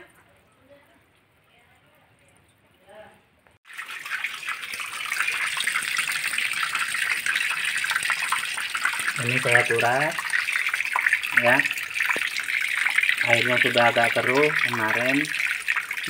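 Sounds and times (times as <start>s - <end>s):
water gushing and splashing on floor: 3.6s - 16.0s.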